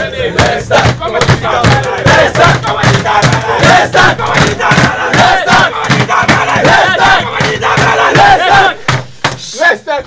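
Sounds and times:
men chanting and shouting: 0:00.0 - 0:10.0.

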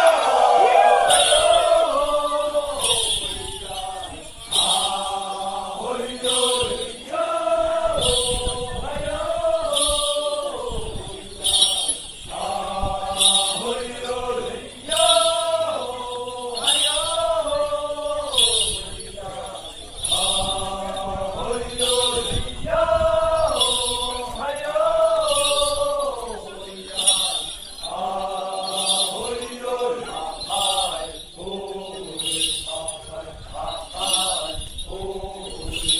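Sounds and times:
men chanting together: 0:00.0 - 0:35.9.

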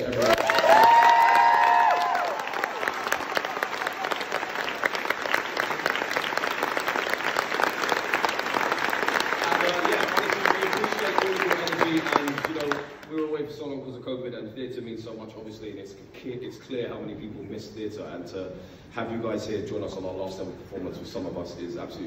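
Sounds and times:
high cheers: 0:00.0 - 0:05.6
audience clapping: 0:00.0 - 0:13.4.

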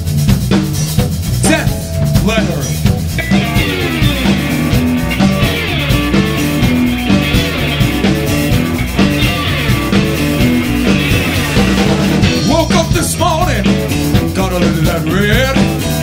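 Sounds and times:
drum kit: 0:00.0 - 0:16.0
electric bass: 0:00.0 - 0:16.0
electric guitar: 0:01.4 - 0:16.0.

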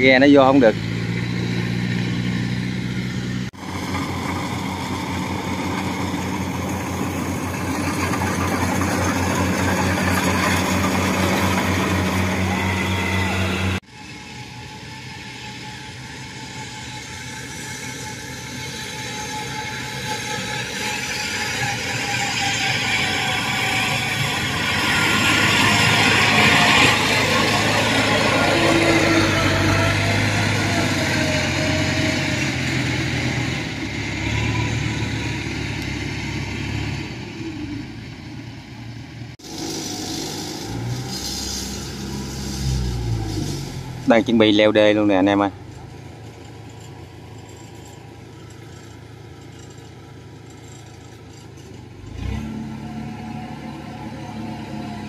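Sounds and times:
combine harvester diesel engine: 0:00.0 - 0:55.0
tracked carrier engine: 0:00.0 - 0:55.0.

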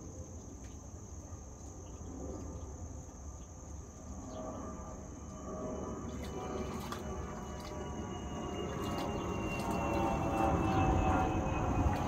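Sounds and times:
faint hum: 0:00.0 - 0:12.0
low engine rumble: 0:00.4 - 0:12.0.

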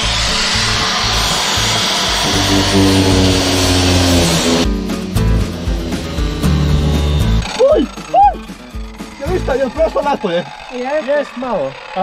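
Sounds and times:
angle grinder grinding cardboard: 0:00.0 - 0:04.7.

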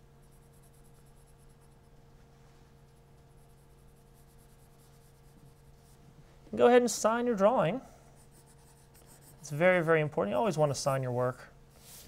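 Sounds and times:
pencil shading on paper: 0:00.2 - 0:02.0, 0:02.9 - 0:06.0, 0:08.2 - 0:09.8.

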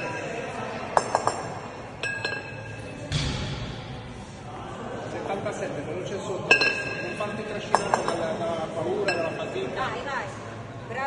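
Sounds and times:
kettlebells clinking: 0:00.0 - 0:02.9, 0:06.5 - 0:08.4, 0:09.0 - 0:09.6.

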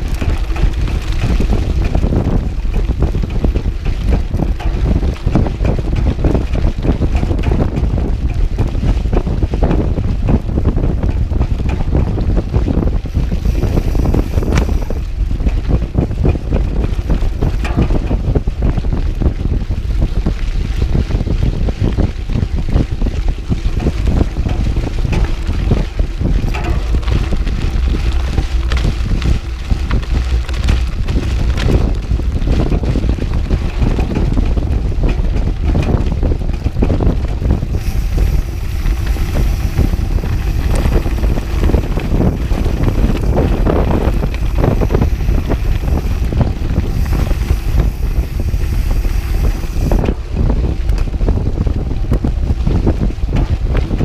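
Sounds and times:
bike rattling on gravel: 0:00.0 - 0:54.0
wind buffeting microphone: 0:00.0 - 0:54.0.

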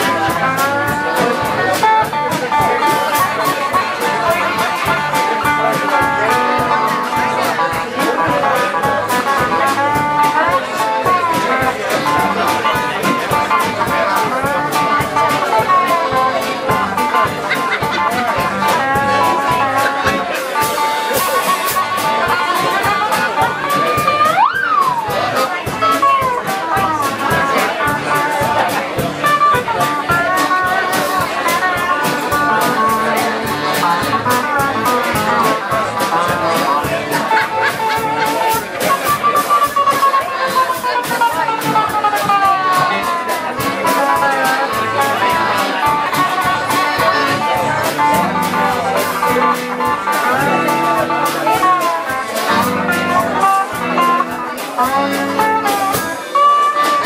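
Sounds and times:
live blues band playing: 0:00.0 - 0:57.0
guitar slide up and down: 0:08.2 - 0:57.0.

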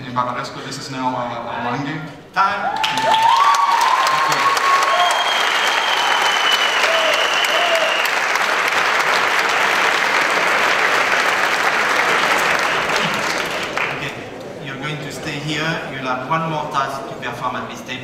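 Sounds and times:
large audience applauding: 0:02.7 - 0:14.3.

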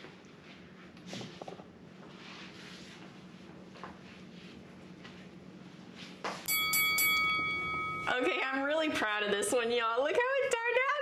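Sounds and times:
bright bell chime: 0:06.5 - 0:08.5.

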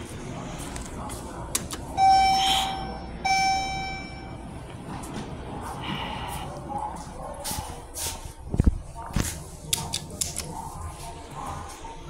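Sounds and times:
elevator chime ringing: 0:01.9 - 0:04.6.

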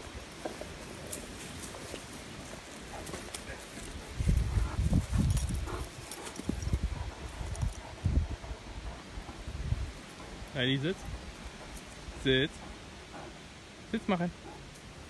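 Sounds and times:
rustling on dry ground: 0:00.0 - 0:13.6.

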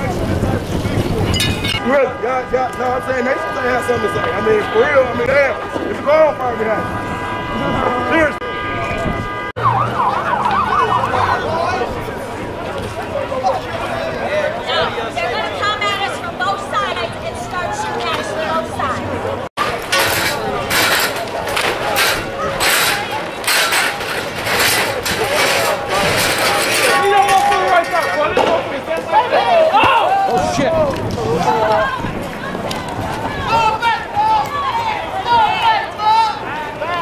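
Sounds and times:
steady held siren tone: 0:01.8 - 0:11.6
emergency siren yelping: 0:06.7 - 0:11.8
people shouting: 0:29.0 - 0:37.0.

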